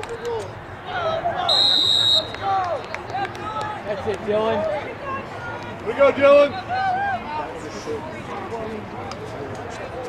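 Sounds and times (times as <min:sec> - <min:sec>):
spectators shouting: 0:00.0 - 0:07.6
referee's whistle blast: 0:01.5 - 0:02.6.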